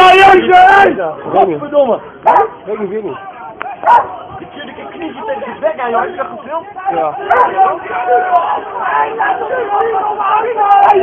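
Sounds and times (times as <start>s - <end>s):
men shouting: 0.0s - 1.1s, 5.2s - 11.0s
dogs barking: 2.1s - 3.0s, 3.8s - 4.2s, 7.2s - 7.7s.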